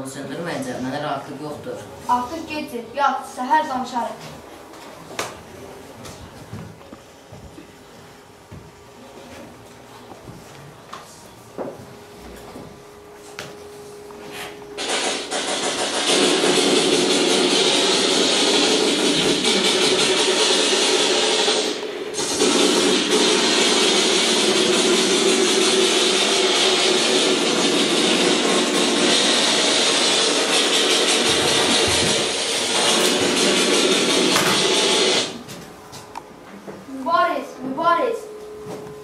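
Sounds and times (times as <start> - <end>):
loud mechanical rushing noise: 14.7 - 35.5.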